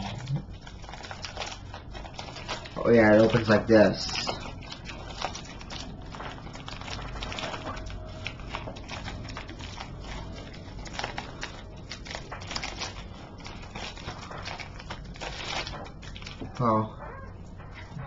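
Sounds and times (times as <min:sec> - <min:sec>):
plastic mailer crinkling: 0:00.0 - 0:16.8.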